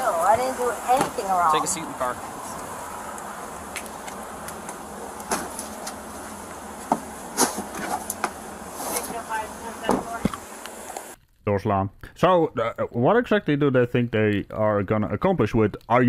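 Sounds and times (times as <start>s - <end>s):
background hiss and hum: 0.0s - 11.2s
man talking: 1.5s - 2.2s, 11.5s - 16.0s.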